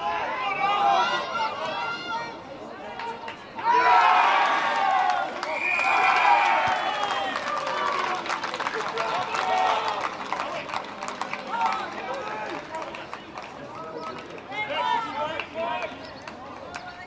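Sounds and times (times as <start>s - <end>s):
voices shouting and calling out: 0.0s - 17.0s.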